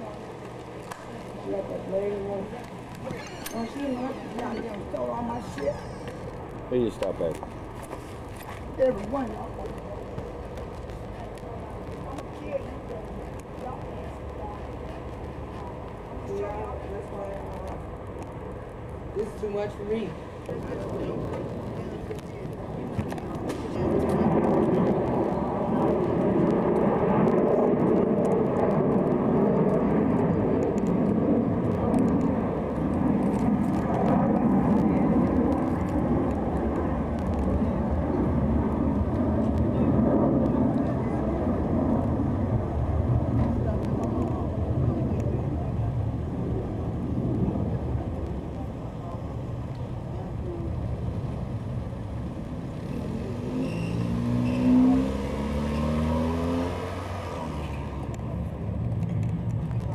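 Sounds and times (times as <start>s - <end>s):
steady low rumble: 0.0s - 53.6s, 56.7s - 59.9s
car engine accelerating: 52.6s - 58.3s.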